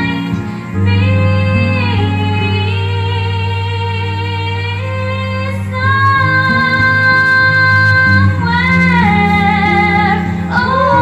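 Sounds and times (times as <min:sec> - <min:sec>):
girl singing into a microphone: 0:00.0 - 0:11.0
guitar backing track: 0:00.0 - 0:11.0.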